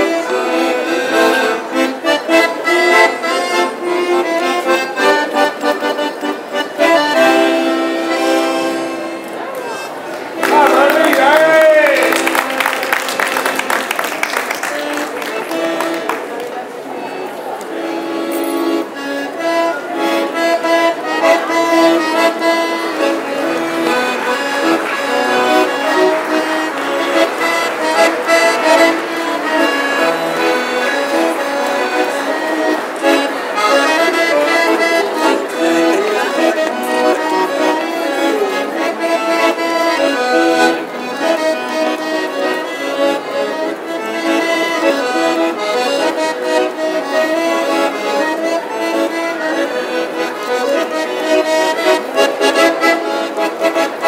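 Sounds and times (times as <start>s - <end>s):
accordion melody: 0.0s - 54.0s.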